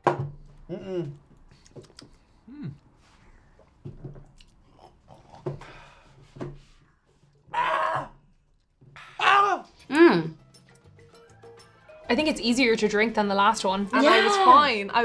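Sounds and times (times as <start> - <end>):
small grunts and murmurs: 0.7 - 1.4, 4.6 - 5.7
people sucking and chewing: 0.7 - 6.2
breathy vocal exhale: 5.6 - 6.3.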